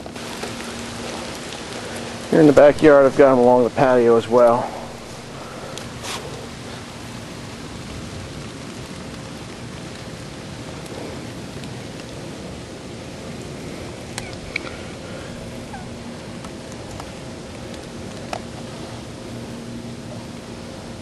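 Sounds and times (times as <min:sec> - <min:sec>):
faint steady hum: 0:00.0 - 0:21.0
steady hiss: 0:00.0 - 0:21.0
small ticks: 0:05.4 - 0:06.5, 0:14.1 - 0:14.9, 0:15.7 - 0:18.8.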